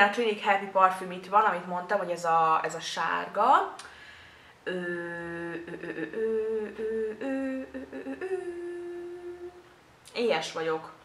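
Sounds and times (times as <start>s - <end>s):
woman humming: 4.6s - 9.8s.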